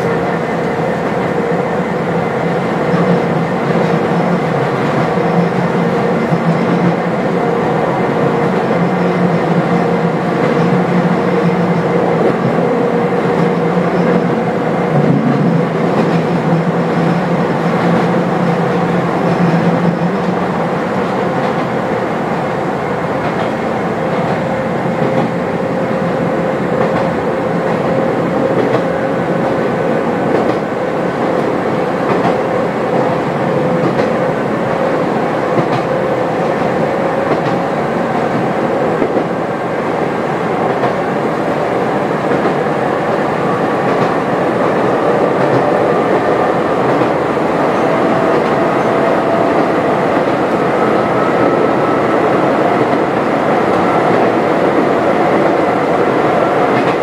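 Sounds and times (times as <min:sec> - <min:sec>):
train wheels rumbling on rail: 0:00.0 - 0:57.0
rail-joint clicks: 0:02.8 - 0:07.7, 0:08.4 - 0:21.8, 0:23.0 - 0:29.6, 0:30.2 - 0:34.4, 0:35.5 - 0:39.4, 0:40.6 - 0:41.2, 0:41.9 - 0:42.6, 0:43.5 - 0:57.0.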